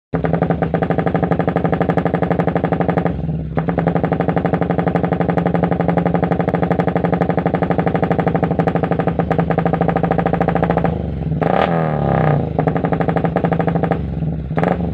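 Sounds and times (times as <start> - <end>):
motorcycle engine idling loudly: 0.2 - 14.9
motorcycle engine revving: 0.2 - 14.9.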